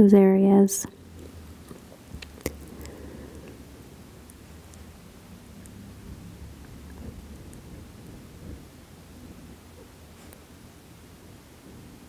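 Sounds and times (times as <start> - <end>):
faint low rumble: 0.8 - 12.0.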